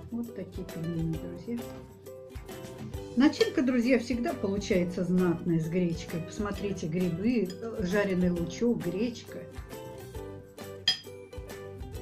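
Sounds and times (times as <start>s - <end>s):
instrumental background music: 0.0s - 12.0s
spoon clinking ceramic bowl: 3.4s - 3.6s, 10.8s - 11.2s.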